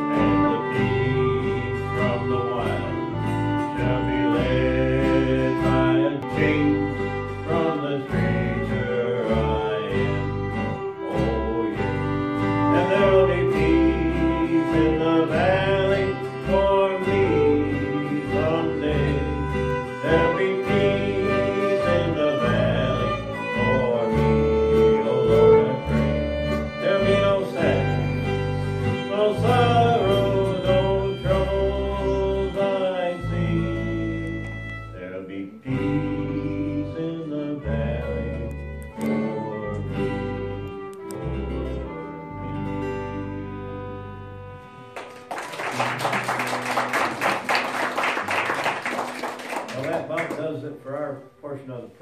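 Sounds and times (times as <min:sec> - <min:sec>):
bass line: 0:00.0 - 0:45.0
strummed acoustic guitar: 0:00.0 - 0:50.7
fiddle melody: 0:00.0 - 0:52.0.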